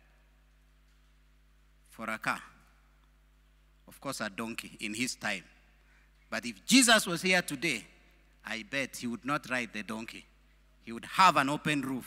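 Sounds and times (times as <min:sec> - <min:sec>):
man speaking: 0:06.3 - 0:12.0.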